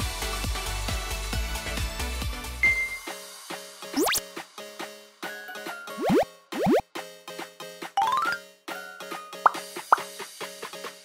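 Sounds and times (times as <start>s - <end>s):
bouncy plucked background music: 4.0s - 4.2s, 5.5s - 7.0s, 7.8s - 10.2s
rising pop sound effects: 4.0s - 4.2s, 5.9s - 6.9s, 8.0s - 8.4s.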